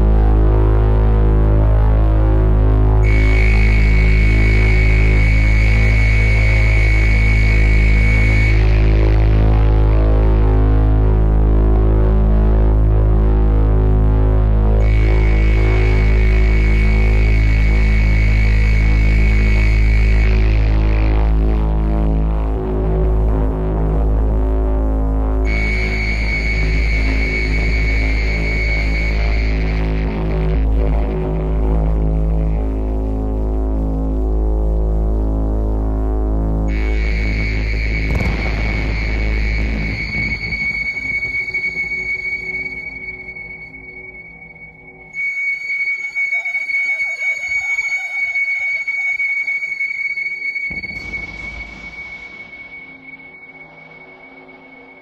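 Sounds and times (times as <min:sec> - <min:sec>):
deep bass drone: 0:00.0 - 0:45.2, 0:50.6 - 0:55.0
thin high steady tone: 0:03.0 - 0:10.0, 0:14.8 - 0:21.4, 0:25.5 - 0:30.4, 0:36.7 - 0:55.0.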